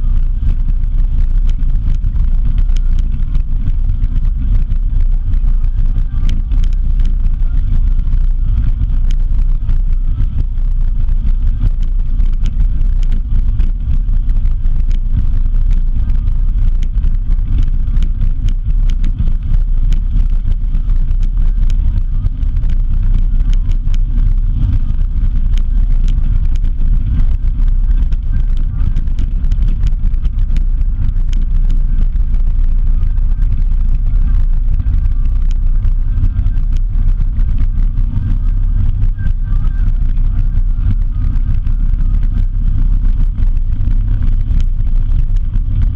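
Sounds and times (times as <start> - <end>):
vehicle rumbling along road: 0.0 - 45.9
wind on microphone: 0.0 - 45.9.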